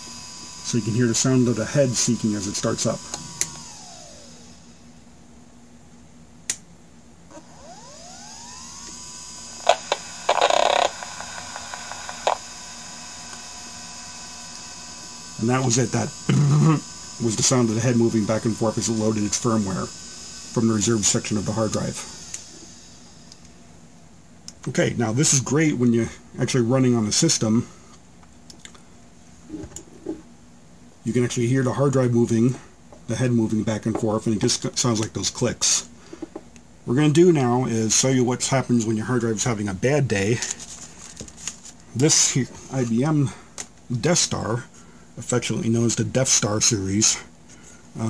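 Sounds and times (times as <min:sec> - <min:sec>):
hard drive spinning up whine: 0:00.0 - 0:04.9, 0:07.3 - 0:23.5.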